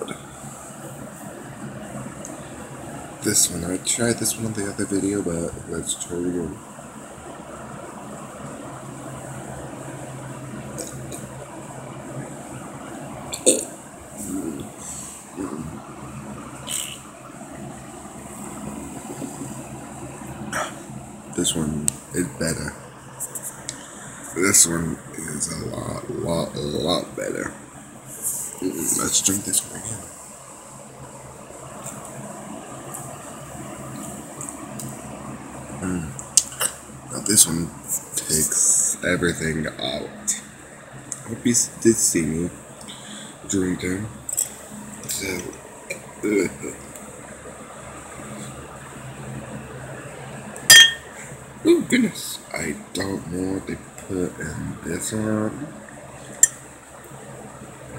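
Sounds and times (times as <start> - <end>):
low room hum: 0.0 - 57.9.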